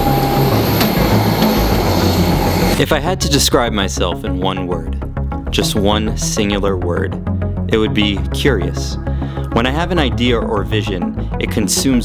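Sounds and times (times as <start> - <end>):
airliner engines running with whine: 0.0 - 2.8.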